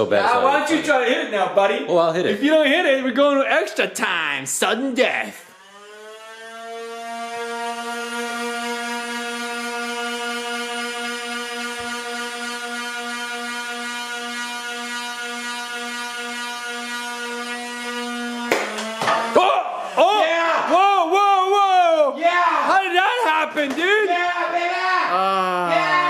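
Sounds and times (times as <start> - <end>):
toy blaster flywheels whining: 5.3 - 19.6.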